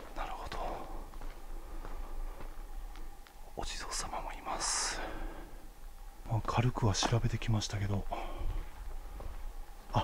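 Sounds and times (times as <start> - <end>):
man whispering: 0.0 - 1.2, 3.4 - 5.6, 6.2 - 8.8.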